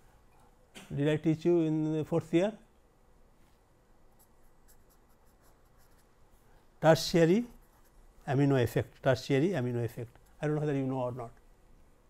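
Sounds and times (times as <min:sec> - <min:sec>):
pen scratching on paper: 0:04.2 - 0:06.1.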